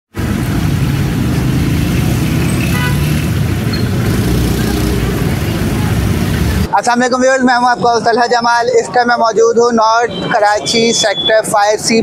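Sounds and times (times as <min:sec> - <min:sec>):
street traffic rumble: 0:00.1 - 0:12.0.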